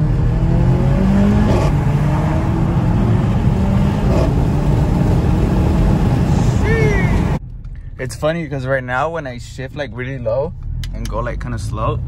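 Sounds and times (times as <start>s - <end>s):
car engine accelerating: 0.0s - 7.4s.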